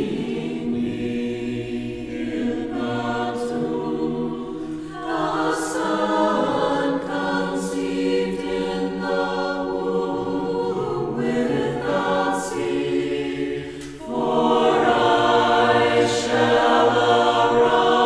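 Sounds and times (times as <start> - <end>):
choir chanting without instruments: 0.0 - 18.0.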